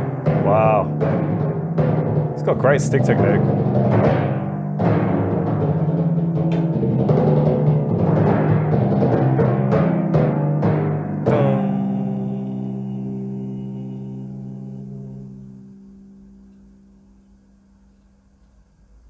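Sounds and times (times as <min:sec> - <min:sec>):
timpani strokes ringing: 0:00.0 - 0:17.9.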